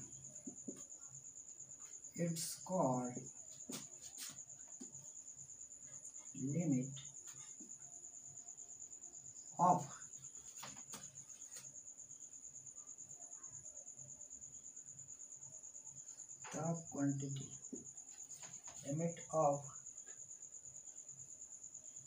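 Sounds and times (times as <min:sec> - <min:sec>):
cricket chirping: 0:00.0 - 0:22.0.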